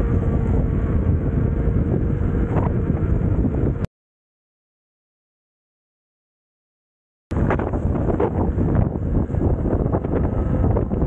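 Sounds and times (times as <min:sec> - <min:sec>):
wind buffeting microphone: 0:00.0 - 0:03.9, 0:07.3 - 0:11.0.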